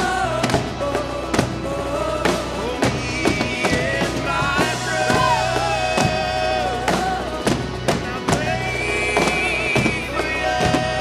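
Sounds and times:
drum kit beat: 0:00.0 - 0:11.0.

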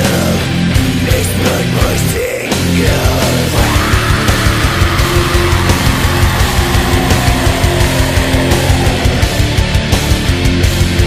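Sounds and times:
black metal guitars and drums: 0:00.0 - 0:11.0.

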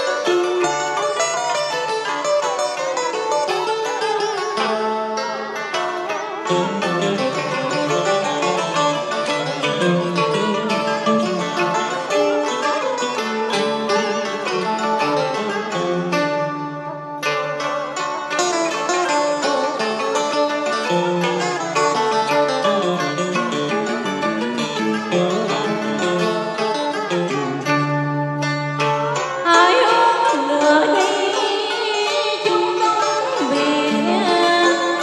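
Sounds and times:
plucked string melody: 0:00.0 - 0:35.0.

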